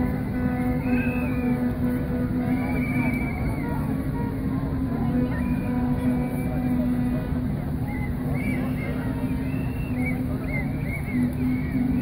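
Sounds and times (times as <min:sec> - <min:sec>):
low music drone: 0:00.0 - 0:12.0.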